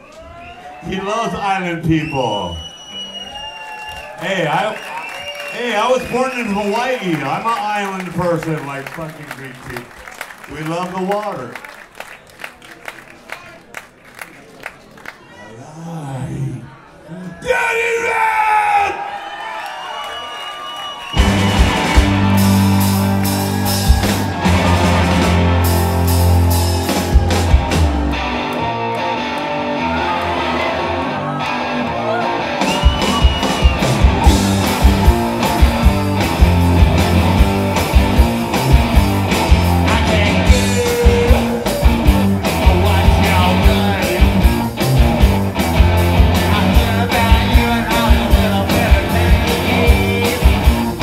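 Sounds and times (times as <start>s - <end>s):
vocals: 15.5s - 17.5s, 39.8s - 41.8s, 42.5s - 44.6s, 46.3s - 50.8s
live rock band playing: 21.1s - 51.0s
steady drum beat: 21.2s - 28.4s, 32.6s - 51.0s.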